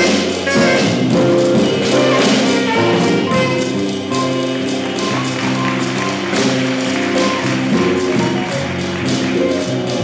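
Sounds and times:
saxophone: 0.0 - 6.4
drum kit with cymbals: 0.0 - 10.0
electric bass: 0.0 - 10.0
piano: 0.0 - 10.0.

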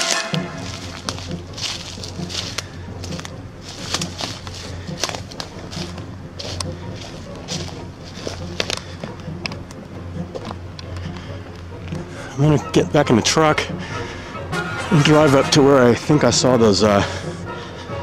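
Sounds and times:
footsteps crunching through dry leaves: 0.0 - 9.6
steady low hum: 0.4 - 18.0.

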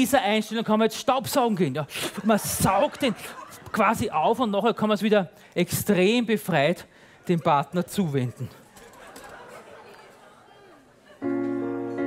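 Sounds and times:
audience murmur and chatter: 6.8 - 12.0.

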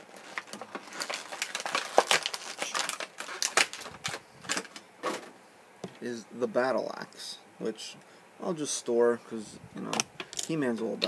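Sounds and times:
plastic packaging clicking and crackling: 0.0 - 4.8.

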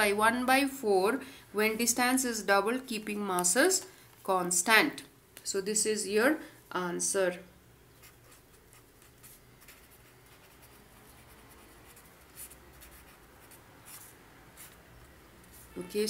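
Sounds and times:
pen scratching on paper: 8.0 - 14.8.

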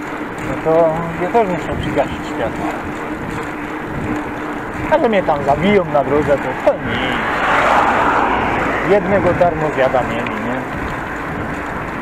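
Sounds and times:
car passing by: 6.5 - 10.8.

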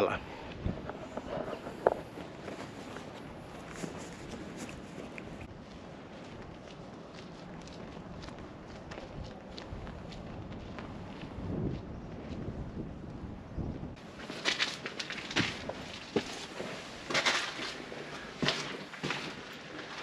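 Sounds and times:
footsteps on stone: 0.5 - 12.5, 14.0 - 20.0.

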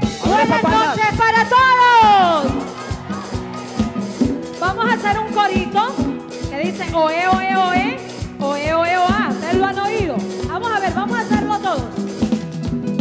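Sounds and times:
band with percussion beat: 0.0 - 13.0.

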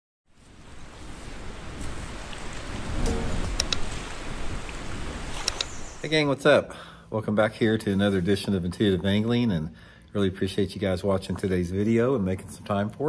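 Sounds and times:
rushing water: 0.4 - 6.3.

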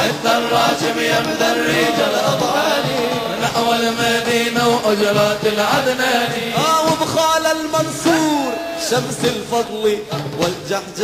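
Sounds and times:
male chorus chanting hymn: 0.0 - 11.0.

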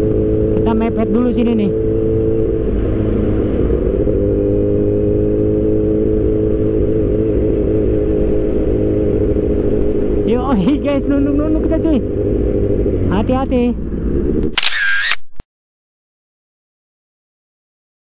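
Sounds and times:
motorcycle engine running: 0.0 - 14.6.

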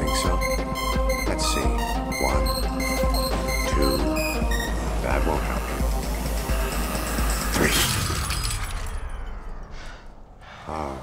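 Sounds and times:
hardcore techno music: 0.0 - 7.8
glass shattering: 7.3 - 9.7.

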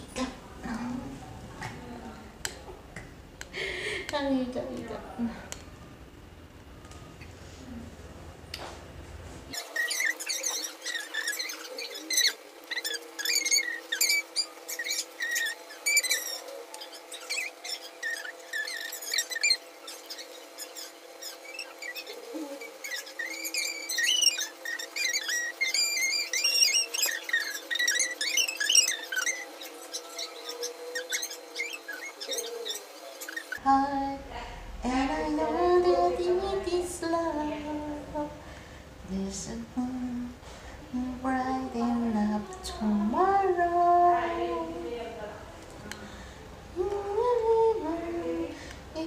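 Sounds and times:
bird-like chirps and twitters: 9.6 - 33.6.

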